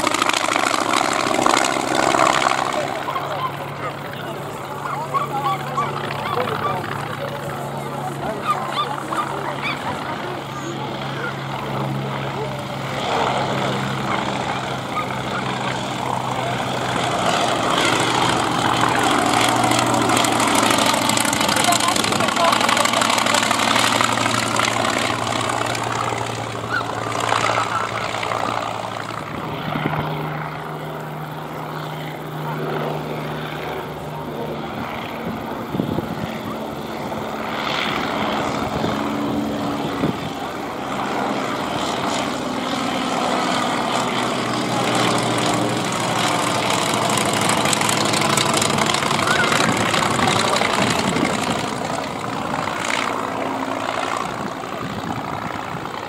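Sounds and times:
propeller plane engine droning: 0.0 - 56.0.

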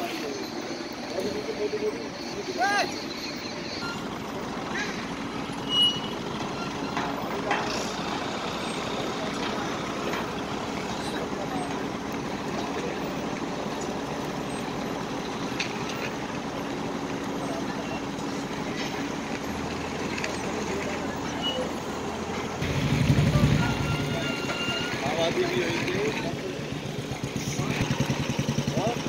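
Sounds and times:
construction machinery engine drone: 0.0 - 29.0.

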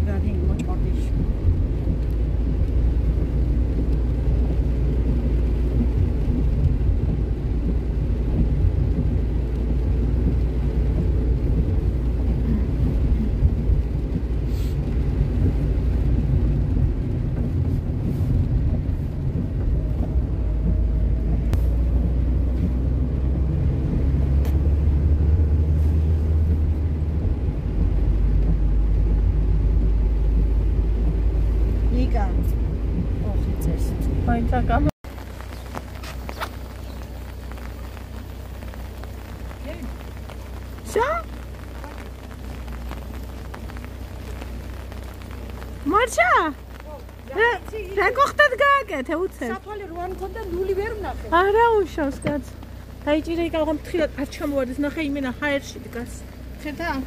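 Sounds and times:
car rumble on wet road: 0.0 - 57.0.

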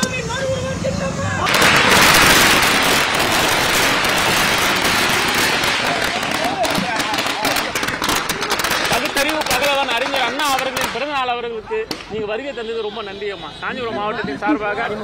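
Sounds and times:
firecrackers crackling: 0.0 - 12.4.

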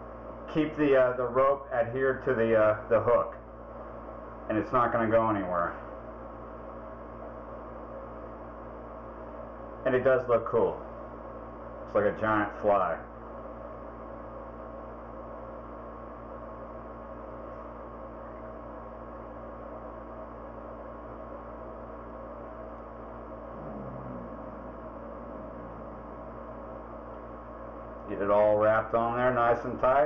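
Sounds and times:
background hum with held tones: 0.0 - 30.0
low murmur: 21.8 - 29.3.

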